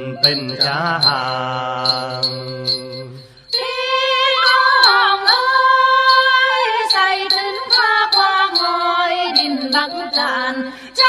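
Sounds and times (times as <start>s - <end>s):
person singing folk song: 0.0s - 11.0s.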